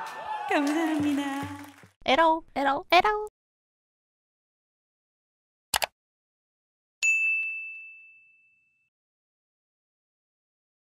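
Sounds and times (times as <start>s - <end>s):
bright bell ding: 7.0s - 8.9s.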